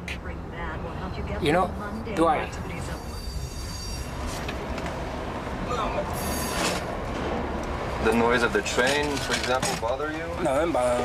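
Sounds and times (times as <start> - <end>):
subway train rumble: 0.0 - 11.0
high wheel squeals: 2.0 - 4.8, 5.6 - 7.0.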